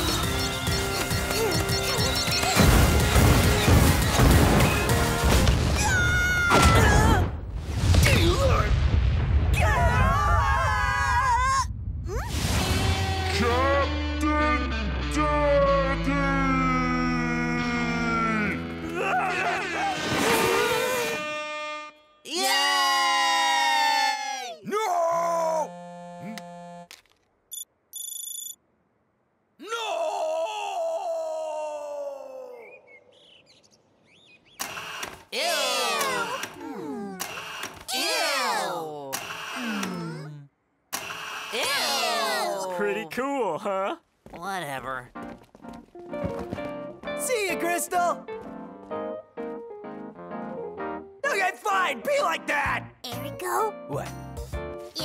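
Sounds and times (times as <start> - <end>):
cartoon music: 0.0 - 3.3
wordless cartoon character voices: 35.4 - 37.3, 37.9 - 40.6, 41.6 - 44.0.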